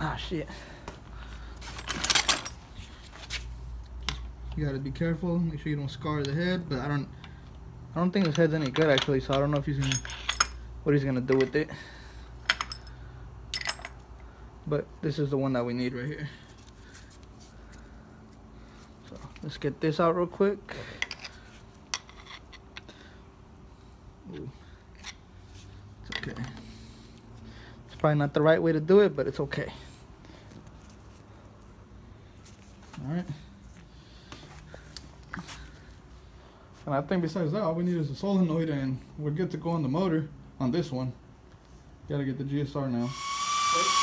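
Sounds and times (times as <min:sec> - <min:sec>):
handling knocks and rattles: 0:01.6 - 0:03.1.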